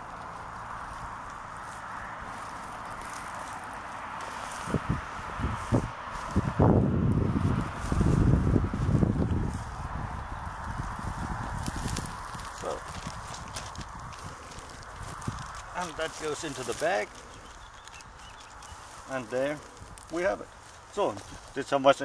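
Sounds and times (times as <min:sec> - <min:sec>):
footfalls on grass: 0:00.0 - 0:17.2
steady outdoor hiss: 0:00.0 - 0:22.0.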